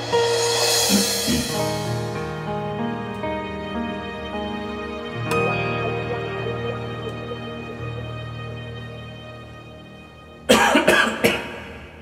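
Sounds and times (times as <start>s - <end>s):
ballad karaoke backing track: 0.0s - 9.5s
man coughing: 0.9s - 1.8s, 10.5s - 11.6s.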